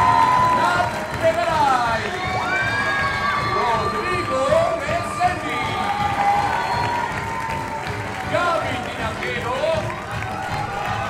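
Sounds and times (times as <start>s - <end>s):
band music: 0.0s - 7.0s
audience applauding and cheering: 0.0s - 11.0s.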